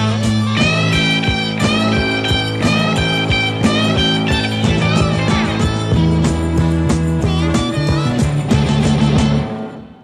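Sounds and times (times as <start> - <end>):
electric guitar bent notes: 0.0 - 10.0.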